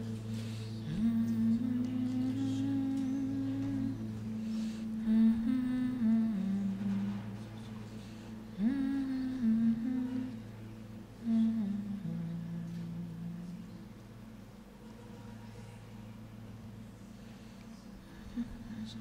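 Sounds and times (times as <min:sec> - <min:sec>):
steady low tone: 0:00.0 - 0:19.0
voices humming wordlessly: 0:00.0 - 0:19.0.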